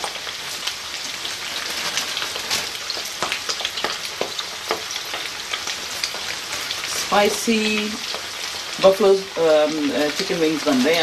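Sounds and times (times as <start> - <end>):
chicken wings deep-frying in oil: 0.0 - 11.0
oil crackling and popping: 0.0 - 11.0.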